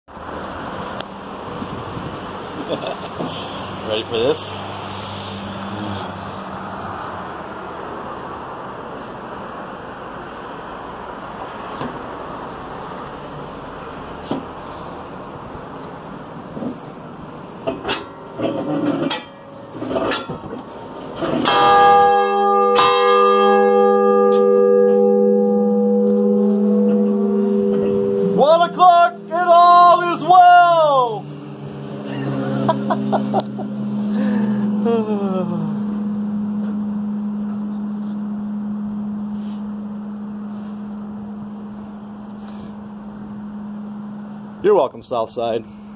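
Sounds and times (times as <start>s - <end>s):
street traffic rush: 0.0s - 45.9s
steady low hum: 8.0s - 45.9s
man's drawn-out wordless call: 27.7s - 31.3s.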